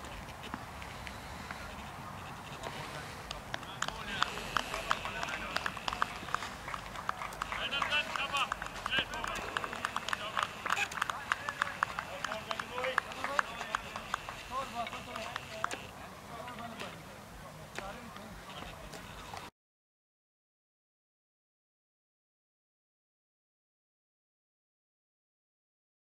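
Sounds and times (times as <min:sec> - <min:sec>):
outdoor chatter of voices: 0:00.0 - 0:19.5.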